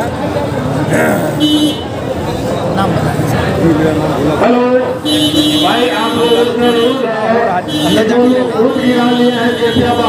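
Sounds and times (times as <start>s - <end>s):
men talking: 0.7s - 1.5s, 3.2s - 10.0s
vehicle horn toot: 1.4s - 2.0s, 5.0s - 7.1s, 7.7s - 10.0s.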